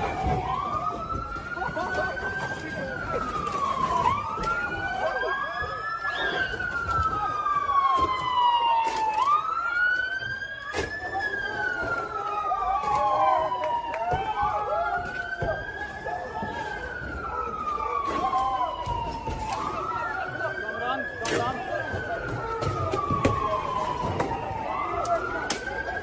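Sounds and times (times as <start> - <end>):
police siren wailing: 0.0 - 26.0.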